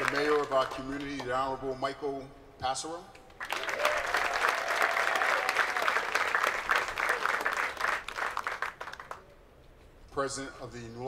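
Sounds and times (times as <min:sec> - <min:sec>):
audience applauding: 0:00.0 - 0:01.2, 0:03.4 - 0:09.2.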